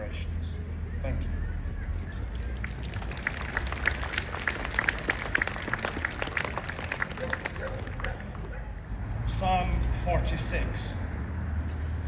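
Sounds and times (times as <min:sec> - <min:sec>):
small crowd clapping: 0:02.2 - 0:08.7.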